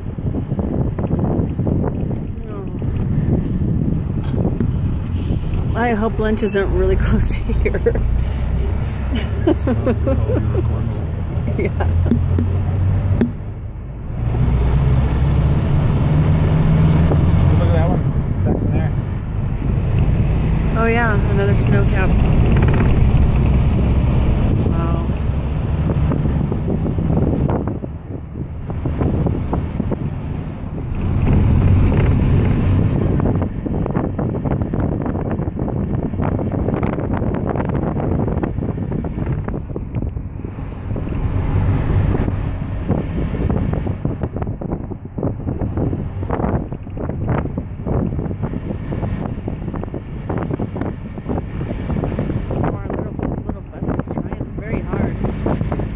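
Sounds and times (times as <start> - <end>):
bus engine and road rumble: 0.0 - 55.9
wind buffeting microphone: 0.0 - 55.9
rattles and knocks: 11.9 - 13.5, 22.0 - 23.6.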